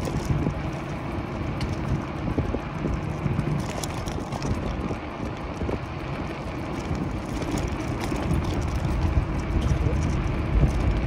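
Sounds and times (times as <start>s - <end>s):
tyre rumble on asphalt: 0.0s - 11.0s
wind buffeting microphone: 0.0s - 11.0s.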